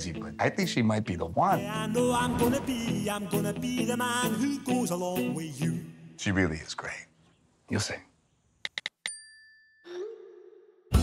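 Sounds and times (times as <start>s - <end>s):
phone keyboard taps: 8.6s - 9.1s.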